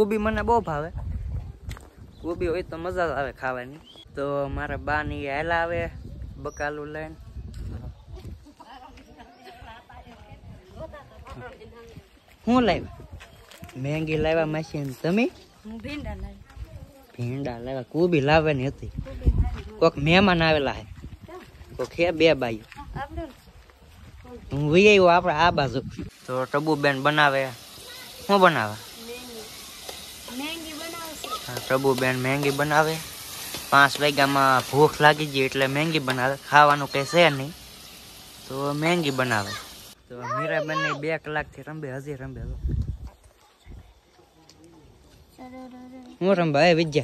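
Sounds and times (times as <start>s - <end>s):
footsteps: 10.0s - 17.4s, 18.5s - 26.8s, 29.4s - 36.9s
food sizzling in a pan: 24.6s - 41.0s.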